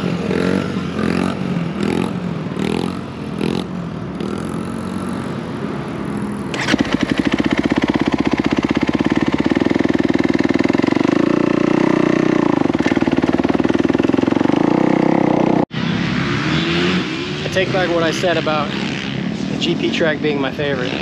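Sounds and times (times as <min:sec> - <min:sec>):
dirt bike engine running: 0:00.0 - 0:05.3, 0:06.0 - 0:15.6.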